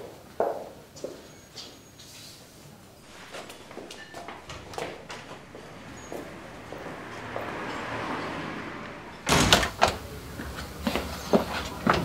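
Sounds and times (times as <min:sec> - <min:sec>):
wooden door clunk: 0:09.2 - 0:10.1
door latch clicks: 0:09.3 - 0:10.0.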